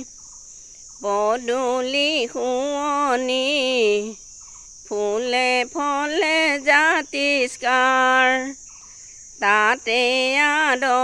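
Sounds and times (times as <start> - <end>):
woman singing unaccompanied: 0.0 - 0.2, 0.9 - 11.0
insects chirring: 0.0 - 11.0.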